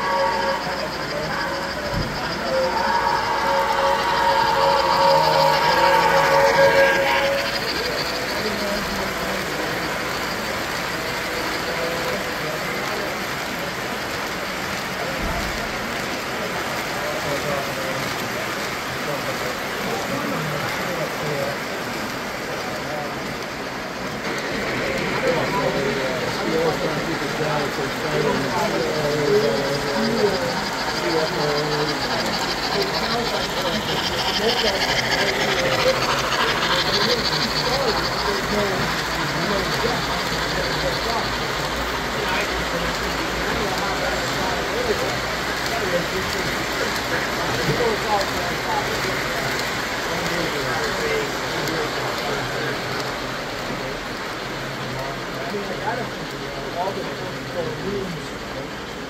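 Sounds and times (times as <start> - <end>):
model trains rolling on track: 0.0 - 59.0
murmur of people talking: 0.0 - 59.0.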